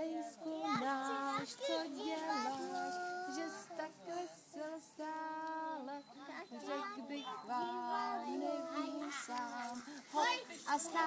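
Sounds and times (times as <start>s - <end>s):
children and woman singing: 0.0s - 11.0s.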